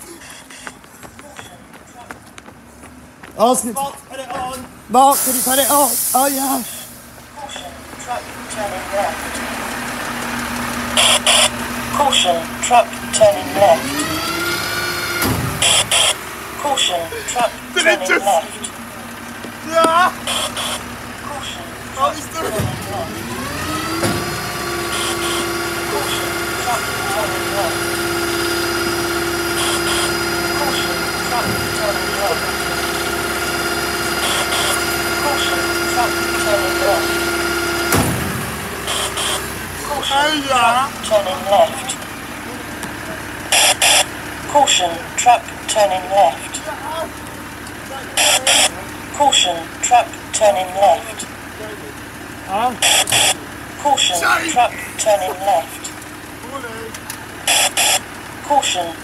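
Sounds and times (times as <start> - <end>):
recorded voice message: 0.0 - 2.2, 3.4 - 9.5, 11.0 - 14.0, 15.6 - 18.9, 19.7 - 23.2, 24.9 - 27.9, 29.6 - 33.0, 34.2 - 37.2, 38.9 - 47.2, 47.9 - 59.0
lorry engine hum with whine: 0.0 - 59.0
truck warning alarm hissing bursts: 5.0 - 7.7, 9.5 - 18.9, 20.0 - 22.1, 23.5 - 40.4, 43.4 - 46.6, 48.2 - 51.4, 52.8 - 54.3, 57.4 - 58.9.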